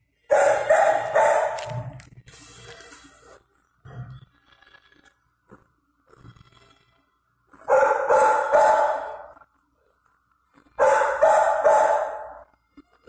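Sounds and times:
dog barking: 0.3s - 1.9s, 7.6s - 9.4s, 10.8s - 12.5s.

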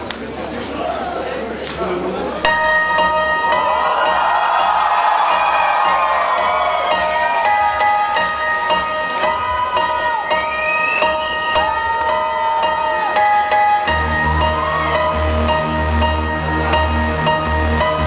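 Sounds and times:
bell-like synthesizer chords: 2.5s - 4.2s
concert crowd cheering: 2.5s - 18.0s.

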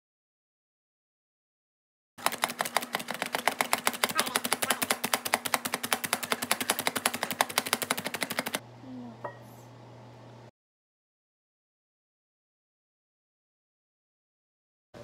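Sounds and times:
food chopper plastic clacks: 2.2s - 8.6s.

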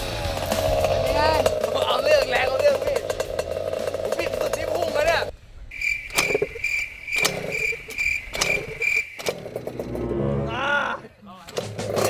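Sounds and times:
cricket chirping: 5.7s - 10.0s.

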